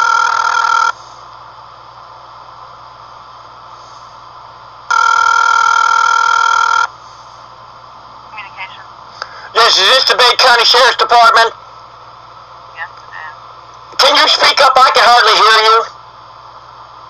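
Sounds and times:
telephone ringback tone: 0:00.0 - 0:01.0, 0:04.9 - 0:06.9
low steady hum: 0:00.0 - 0:17.0.

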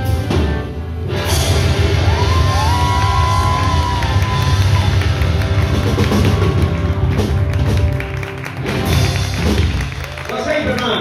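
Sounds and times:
live band playing: 0:00.0 - 0:11.0
audience cheering: 0:01.6 - 0:11.0.

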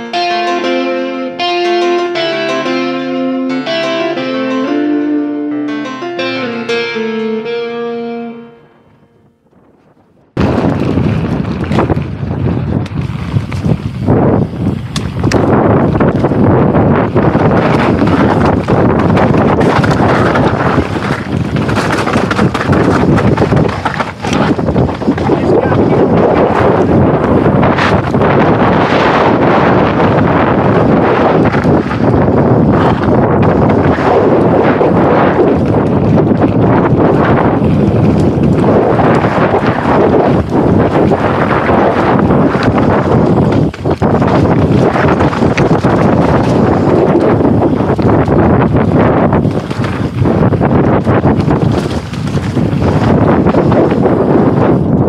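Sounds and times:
rough rumble: 0:08.8 - 0:55.0
wind buffeting microphone: 0:08.9 - 0:55.0
knocks and rattles: 0:17.3 - 0:26.9.

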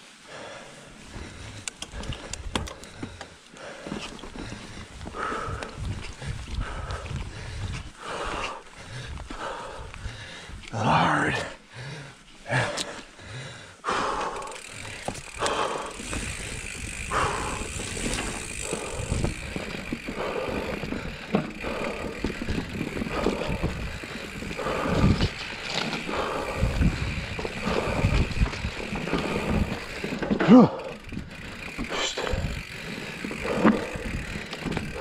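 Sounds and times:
bike tyres rolling on dirt: 0:00.0 - 0:35.0
bike clattering and rattling: 0:01.1 - 0:10.4, 0:13.9 - 0:35.0.

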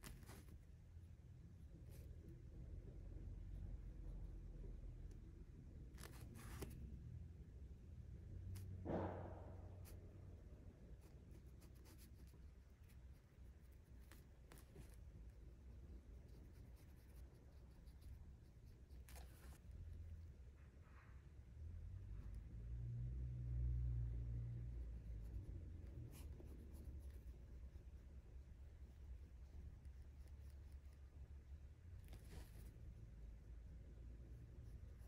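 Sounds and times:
paintbrush scratching on paper: 0:00.0 - 0:00.7, 0:06.0 - 0:06.8, 0:10.9 - 0:20.3, 0:24.8 - 0:31.3, 0:32.0 - 0:35.0
low room hum: 0:00.0 - 0:35.0
brush rubbing on paper: 0:11.0 - 0:19.9.

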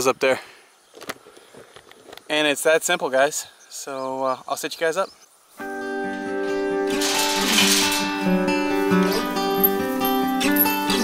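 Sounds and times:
acoustic guitar playing: 0:05.6 - 0:11.0.

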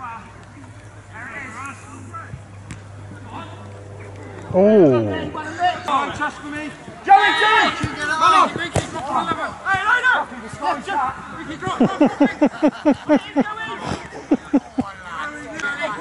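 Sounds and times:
players and spectators shouting: 0:03.2 - 0:11.7.

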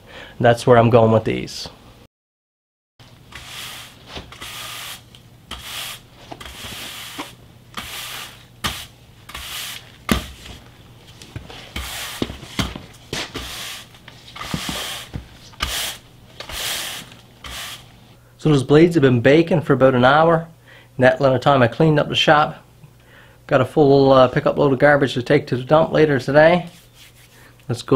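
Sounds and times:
push broom sweeping concrete: 0:03.1 - 0:18.1.

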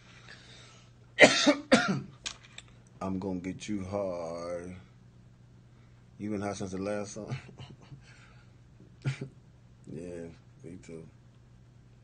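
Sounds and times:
man coughing: 0:01.2 - 0:02.1.

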